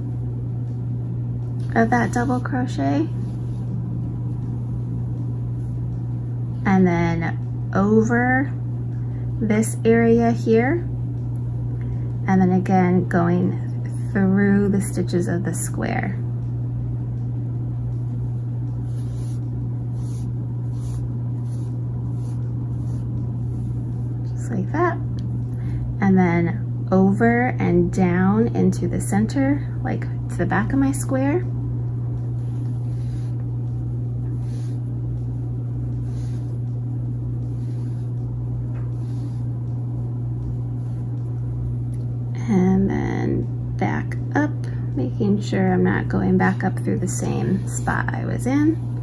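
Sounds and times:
low hum: 0.0 - 49.0
soft rustles of yarn: 18.8 - 24.0.

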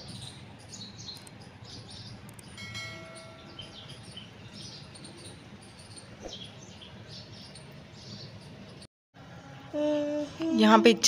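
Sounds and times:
small birds chirping: 0.0 - 8.9
bell-like ding: 2.6 - 3.8.

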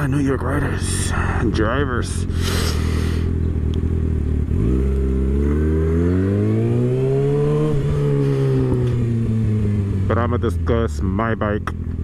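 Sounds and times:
motorcycle engine revving: 0.0 - 12.0.

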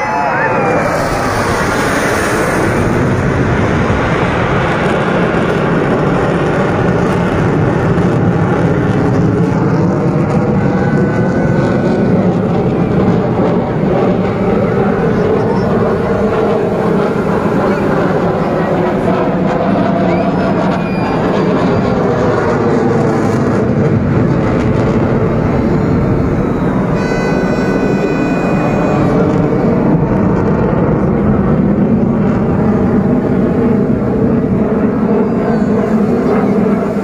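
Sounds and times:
jet engine roar: 0.0 - 37.0.

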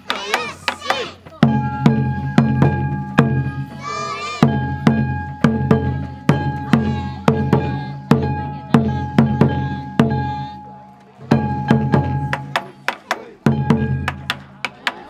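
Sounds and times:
taiko drum beats: 0.0 - 15.0.

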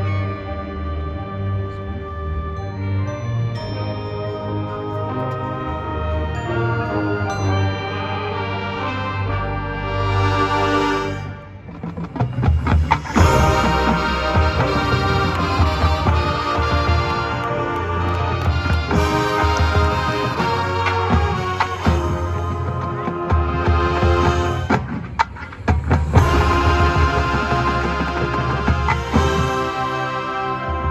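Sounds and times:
marching band playing: 3.6 - 30.9
held brass chord: 4.6 - 11.6, 13.0 - 24.9, 26.2 - 30.9
sharp percussion hits: 11.8 - 22.6.

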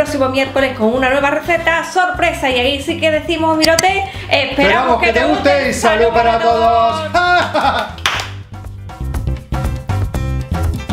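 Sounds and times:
music with steady beat: 4.8 - 10.9
hand clap: 7.4 - 8.6.

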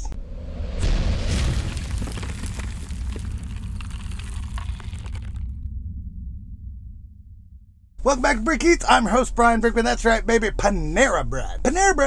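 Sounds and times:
deep boom: 0.2 - 8.1
crackling rumbling tail: 0.2 - 11.2.

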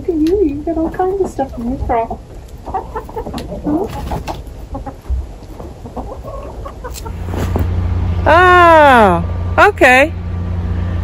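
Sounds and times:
low steady rumble: 0.0 - 11.0
hens clucking: 0.2 - 7.7.

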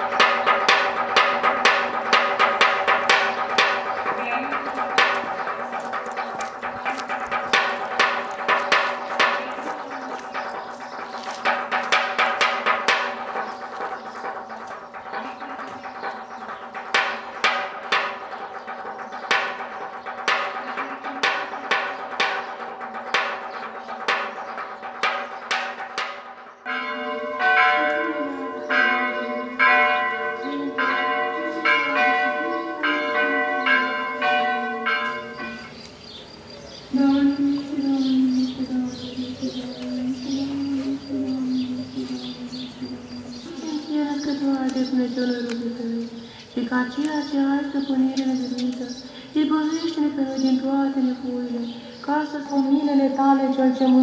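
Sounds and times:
church bells ringing: 0.0 - 54.0.

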